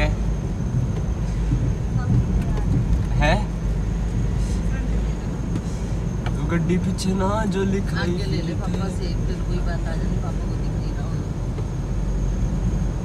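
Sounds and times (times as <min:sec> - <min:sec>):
car engine and tyres rumbling: 0:00.0 - 0:13.0.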